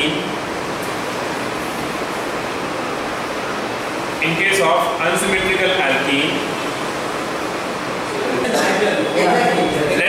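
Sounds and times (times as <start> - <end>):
steady background hiss: 0.0 - 10.0.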